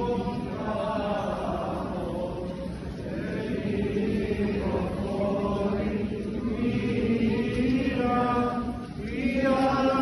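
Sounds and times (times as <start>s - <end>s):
chanters singing a chant: 0.0s - 10.0s.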